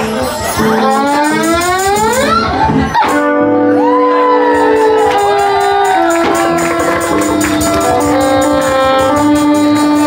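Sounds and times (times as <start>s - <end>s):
conga drums: 0.0s - 10.0s.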